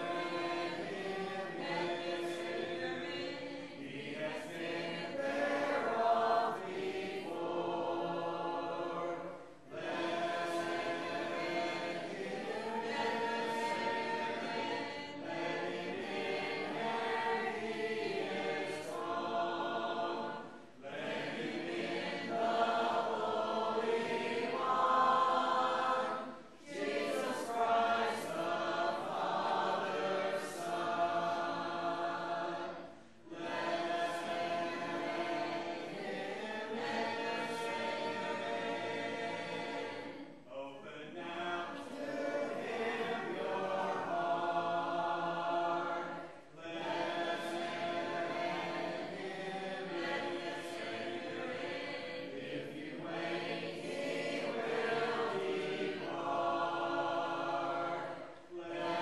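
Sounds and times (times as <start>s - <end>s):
congregation singing a hymn: 0.0s - 59.0s.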